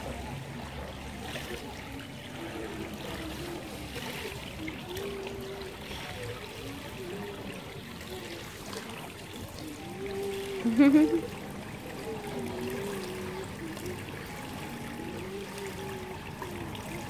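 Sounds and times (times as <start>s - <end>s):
faint wavering tone: 0.0s - 17.0s
pool water lapping: 0.0s - 17.0s.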